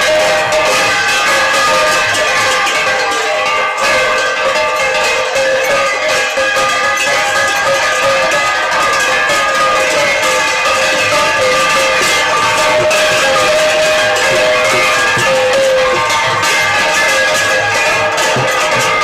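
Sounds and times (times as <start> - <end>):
barrel drum playing: 0.0 - 19.0
hand cymbals clashing: 0.0 - 19.0.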